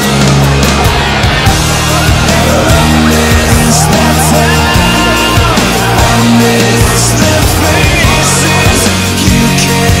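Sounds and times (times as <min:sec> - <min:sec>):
instrumental rock music: 0:00.0 - 0:10.0.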